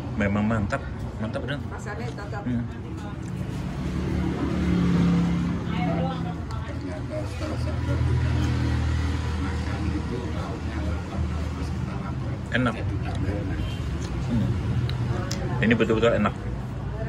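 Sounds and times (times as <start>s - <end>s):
street traffic: 0.0s - 17.0s.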